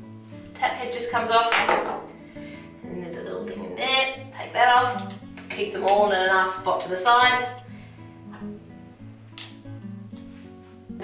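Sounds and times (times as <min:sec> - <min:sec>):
acoustic guitar music: 0:06.6 - 0:11.0.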